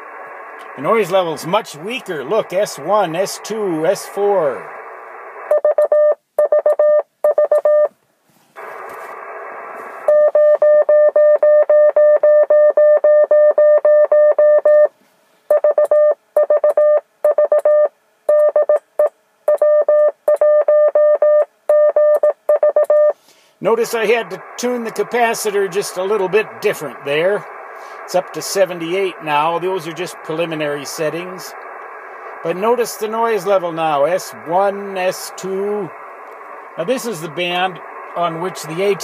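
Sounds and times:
radio band noise hiss: 0.0 - 5.5, 8.4 - 10.1, 23.2 - 39.0
morse code beeping tone: 5.5 - 7.9, 10.1 - 14.9, 15.5 - 23.2.

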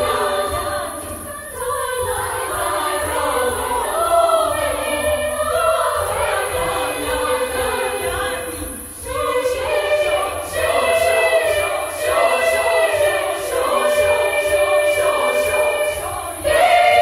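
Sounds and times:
girls' choir singing a cappella: 0.0 - 17.0.

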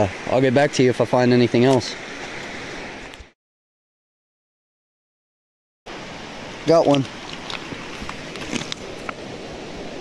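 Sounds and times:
steady outdoor hiss: 0.0 - 3.3, 5.9 - 10.0
gravel shifting underfoot: 6.9 - 9.3.

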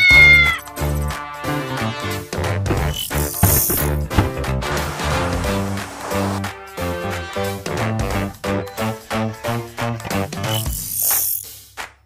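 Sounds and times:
cat meowing: 0.0 - 0.6.

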